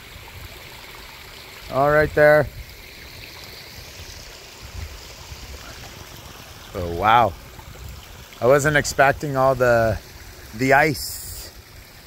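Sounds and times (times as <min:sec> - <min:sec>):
trickle of running water: 0:00.0 - 0:12.0.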